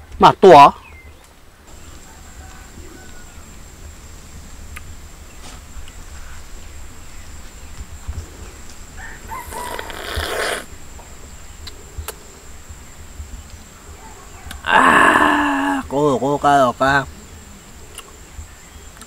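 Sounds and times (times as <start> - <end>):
rooster crowing: 1.9 - 3.6, 9.0 - 10.4.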